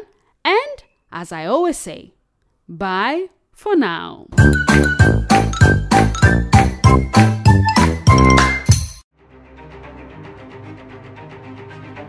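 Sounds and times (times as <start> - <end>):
low bass notes: 4.4 - 7.2
bright ringing jingle notes: 4.4 - 9.0.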